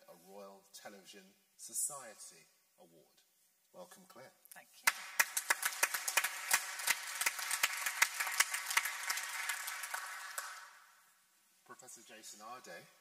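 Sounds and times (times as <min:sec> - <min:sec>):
audience applauding: 0:04.9 - 0:11.0.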